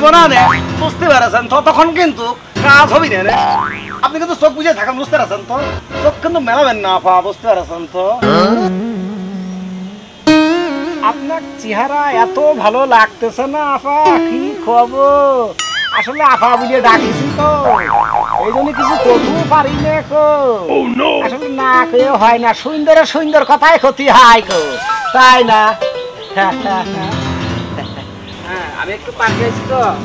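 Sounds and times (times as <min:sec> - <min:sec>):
cartoon boing sounds: 0:00.4 - 0:00.7, 0:03.3 - 0:04.1, 0:08.2 - 0:08.8, 0:15.6 - 0:19.5, 0:24.5 - 0:25.3
gliding whistle-like tone: 0:15.6 - 0:16.6
person speaking: 0:15.8 - 0:22.6.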